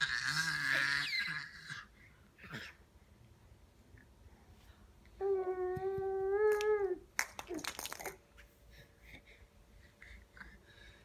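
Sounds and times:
baby whining: 0.0 - 2.8, 5.2 - 7.6.

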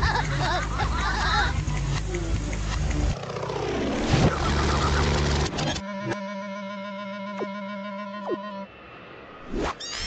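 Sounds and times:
cartoon propeller plane drone: 0.0 - 9.0.

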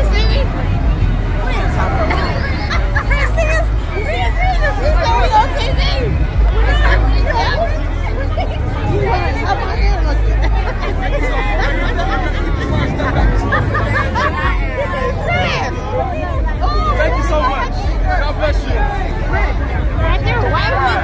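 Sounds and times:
crowd voices talking and calling out: 0.0 - 21.0
low uneven rumble: 0.0 - 21.0.

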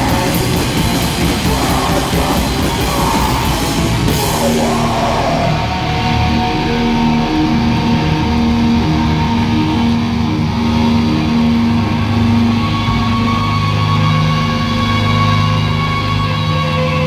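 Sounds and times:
high held guitar note: 0.0 - 14.8
rock band playing: 0.0 - 17.0.

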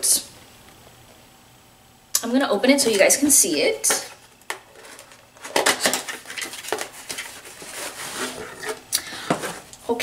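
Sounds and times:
rustling and scraping: 3.9 - 9.8.

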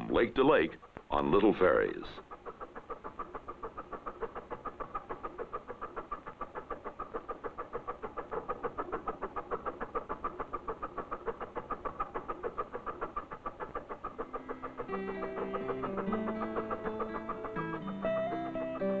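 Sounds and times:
boat engine chugging: 0.0 - 19.0.

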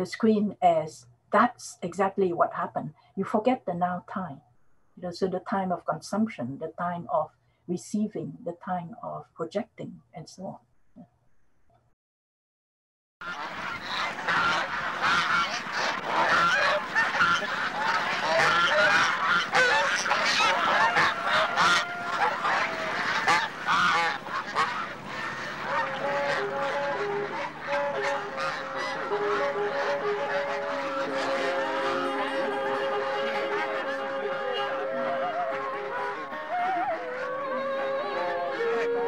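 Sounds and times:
flock of fowl calling: 13.2 - 39.0
music with long held notes: 14.2 - 39.0.

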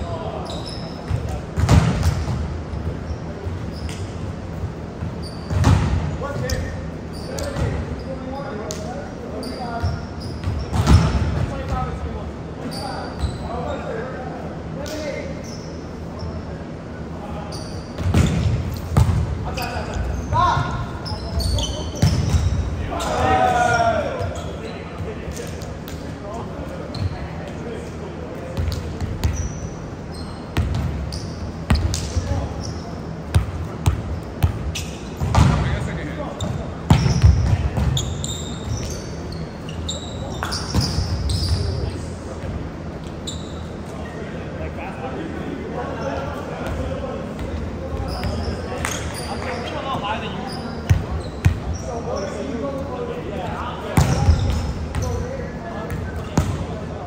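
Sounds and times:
sneaker squeaks: 0.0 - 14.1, 14.7 - 44.2, 45.8 - 52.8, 53.6 - 56.8
players' voices and shouts: 19.4 - 25.6.

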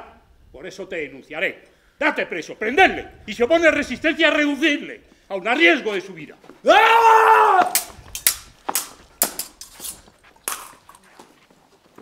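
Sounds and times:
swords clashing: 7.6 - 11.0.

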